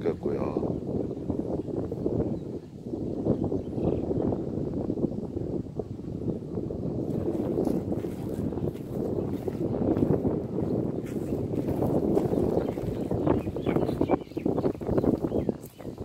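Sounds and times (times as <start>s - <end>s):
wind buffeting microphone: 0.0s - 16.0s
footsteps on dry grass and leaves: 7.0s - 16.0s.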